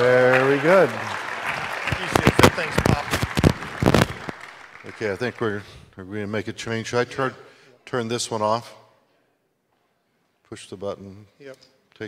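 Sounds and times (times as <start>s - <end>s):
scattered hand claps: 0.0s - 5.4s.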